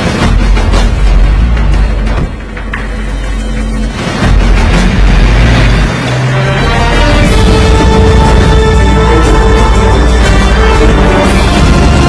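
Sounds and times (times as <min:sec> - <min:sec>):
faint film score music: 0:00.0 - 0:12.0.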